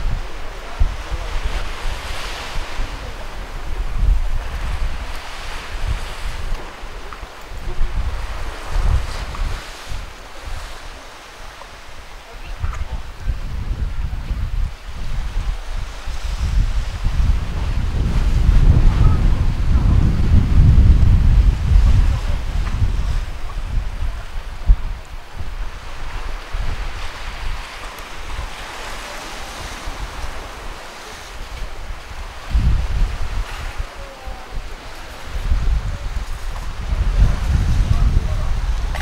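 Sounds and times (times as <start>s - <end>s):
sea waves on rocky shore: 0.0s - 39.0s
wind buffeting microphone: 0.0s - 39.0s.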